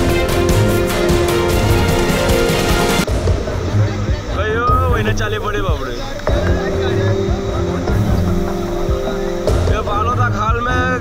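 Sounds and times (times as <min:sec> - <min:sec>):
flooding river rushing: 0:00.0 - 0:04.2.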